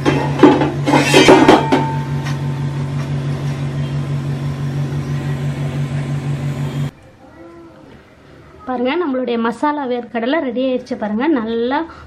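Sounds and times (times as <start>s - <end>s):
steady hum with hiss: 0.0s - 12.0s.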